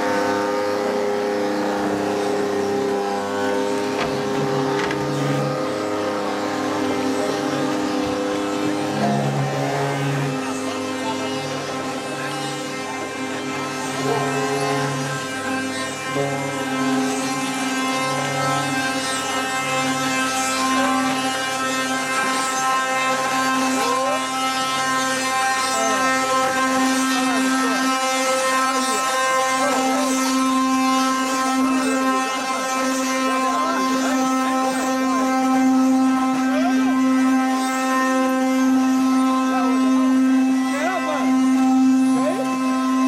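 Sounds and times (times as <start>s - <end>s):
wooden axle droning whine: 0.0s - 43.0s.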